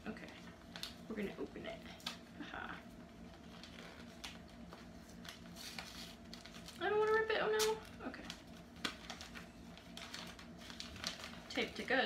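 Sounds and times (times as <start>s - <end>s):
paper crinkle: 3.1s - 12.0s
paper rustling: 3.2s - 12.0s.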